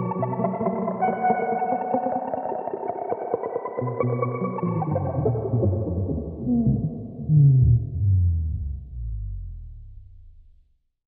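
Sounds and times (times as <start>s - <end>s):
layered guitar loop with echo: 0.0s - 9.2s
low bass line: 5.2s - 10.8s.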